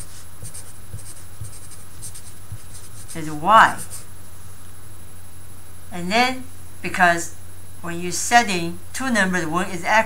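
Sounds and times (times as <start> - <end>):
marker scratching on paper: 0.0 - 4.1.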